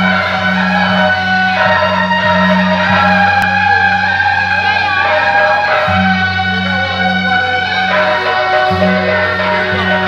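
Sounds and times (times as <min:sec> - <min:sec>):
melody of held notes: 0:00.0 - 0:10.0
steady low drone: 0:00.0 - 0:10.0.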